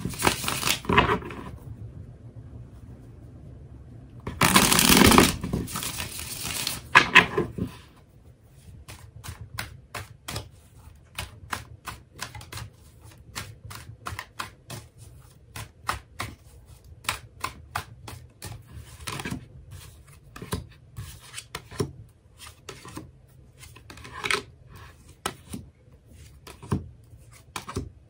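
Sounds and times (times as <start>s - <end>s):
cards riffling together: 0.0s - 1.0s, 4.4s - 6.9s
card deck fluttering: 4.4s - 6.9s.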